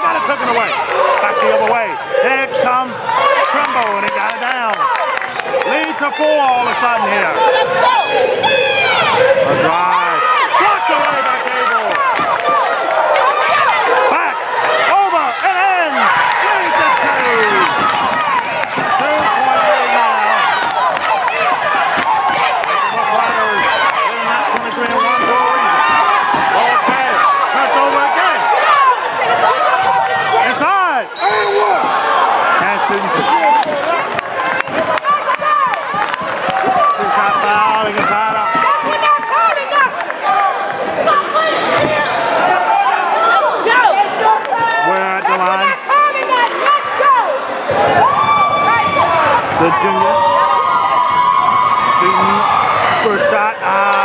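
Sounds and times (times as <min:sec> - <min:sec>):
voices in a gym: 0:00.0 - 0:54.0
shoe squeaks: 0:31.2 - 0:31.8.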